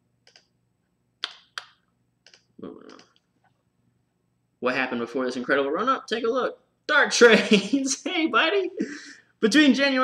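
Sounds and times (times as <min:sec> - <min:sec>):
computer mouse clicks: 0:00.2 - 0:00.5, 0:01.2 - 0:03.3.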